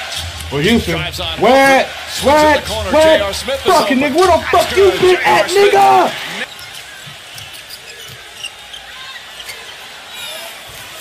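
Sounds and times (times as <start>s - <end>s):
low arena background: 0.0s - 11.0s
man's voice: 0.4s - 6.4s.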